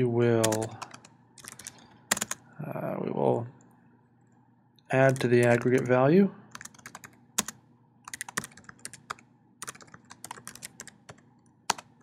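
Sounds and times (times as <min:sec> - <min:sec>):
typing on computer keyboard: 0:00.4 - 0:02.4, 0:06.5 - 0:12.0.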